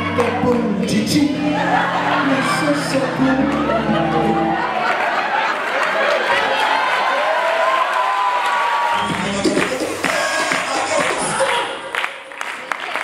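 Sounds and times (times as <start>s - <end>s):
bass-heavy backing music: 0.0s - 4.7s, 9.0s - 11.4s
audience cheering: 1.3s - 13.0s.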